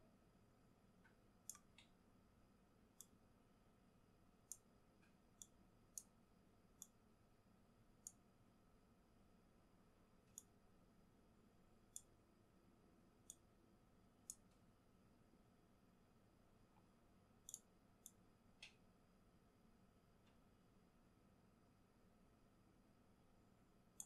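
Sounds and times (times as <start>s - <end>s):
computer mouse clicks: 1.0s - 1.9s, 3.0s - 3.2s, 4.5s - 6.1s, 6.8s - 7.0s, 10.3s - 10.5s, 11.9s - 12.1s, 17.4s - 18.8s.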